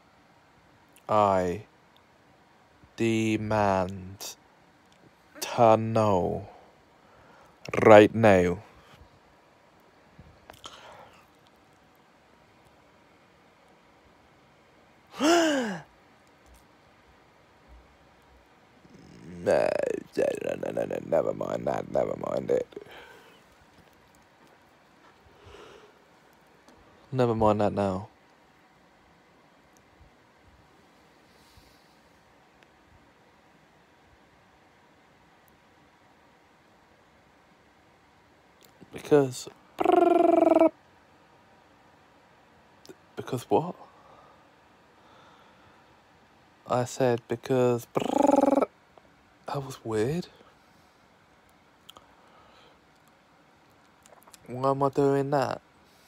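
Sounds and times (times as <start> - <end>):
man sighing: 15.1 - 15.9, 22.8 - 23.4
man's buzzy vocal noise: 15.2 - 15.9, 18.8 - 23.1, 39.8 - 40.7, 47.8 - 48.7.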